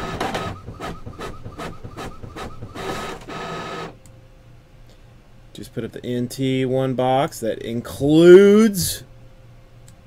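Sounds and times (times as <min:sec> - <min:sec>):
printer whine: 0:00.0 - 0:04.0.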